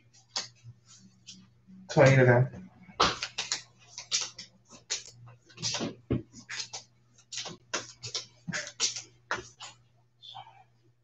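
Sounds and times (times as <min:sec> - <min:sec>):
cards being shuffled: 0:03.0 - 0:09.8.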